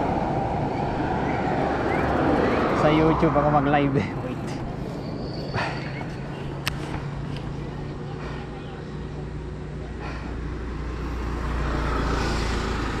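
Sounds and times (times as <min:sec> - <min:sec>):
road traffic rumble: 0:00.0 - 0:13.0
motorcycle approaching: 0:08.8 - 0:13.0.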